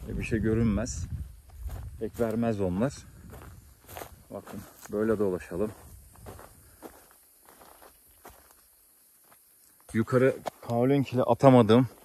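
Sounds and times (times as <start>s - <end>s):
footsteps on dry grass: 0.0s - 12.0s.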